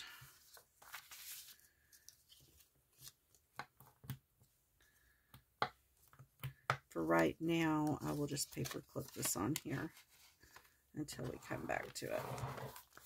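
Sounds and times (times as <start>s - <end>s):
paper pages rustling: 0.0s - 3.6s, 7.8s - 13.0s.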